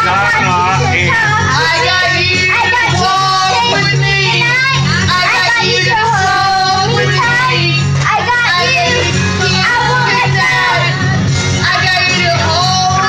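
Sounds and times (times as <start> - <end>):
music backing track: 0.0 - 13.0
woman singing into microphone: 0.0 - 13.0.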